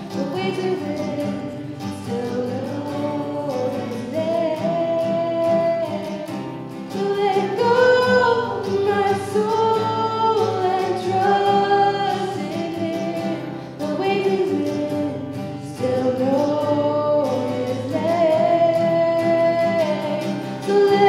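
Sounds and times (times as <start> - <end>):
strummed acoustic guitar: 0.0 - 21.0
woman singing: 0.0 - 21.0.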